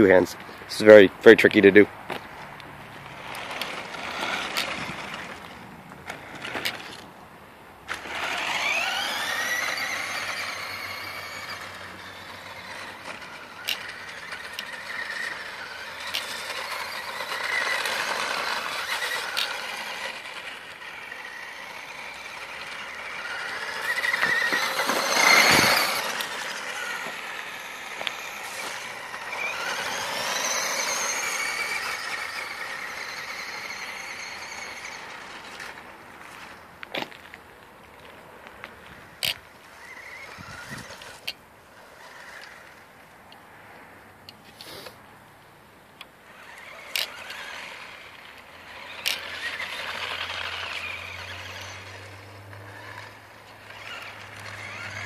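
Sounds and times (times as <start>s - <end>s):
electric motor whining: 7.9s - 35.8s, 39.2s - 41.4s, 46.3s - 55.0s.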